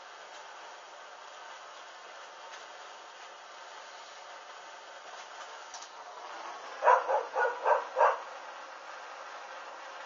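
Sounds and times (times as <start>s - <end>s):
dog barking: 6.8s - 8.3s.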